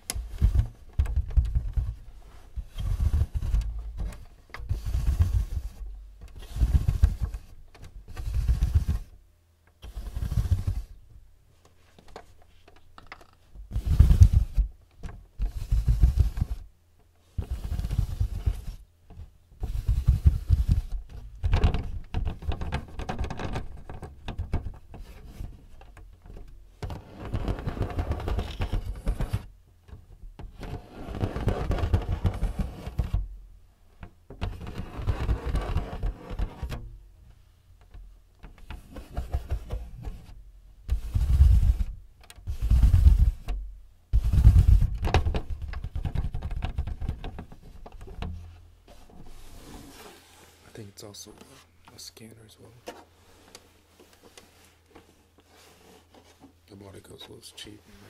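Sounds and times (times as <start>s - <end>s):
fingertips tapping on plastic: 44.2s - 48.3s.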